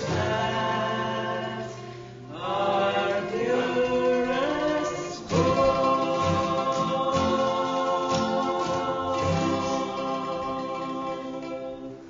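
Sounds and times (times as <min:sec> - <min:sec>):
acoustic guitar: 0:00.0 - 0:12.0
small plucked string instrument: 0:00.0 - 0:12.0
women singing in harmony: 0:00.0 - 0:12.0.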